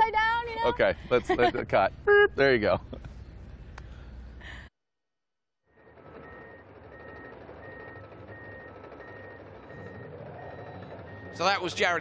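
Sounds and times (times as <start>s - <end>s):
bulldozer engine running: 5.7s - 12.0s
reversing alarm beeping: 5.8s - 12.0s.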